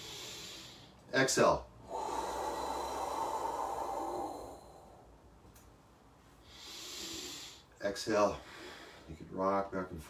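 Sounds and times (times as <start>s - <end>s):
hissing inhale: 0.0s - 1.0s, 1.8s - 5.2s, 6.4s - 7.8s
man exhaling breathy whoo: 1.8s - 5.1s.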